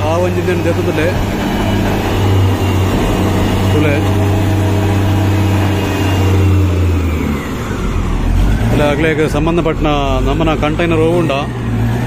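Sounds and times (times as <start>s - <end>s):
diesel engine humming: 0.0s - 12.0s.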